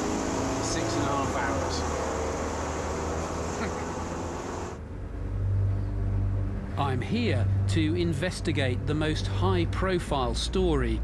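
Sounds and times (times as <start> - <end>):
road noise hiss: 0.0 - 4.8
vehicle engine hum: 0.0 - 10.9.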